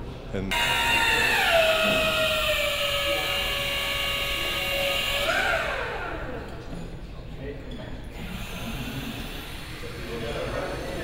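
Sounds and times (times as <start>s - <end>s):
small electric motor whining: 0.5s - 6.6s, 8.1s - 11.0s.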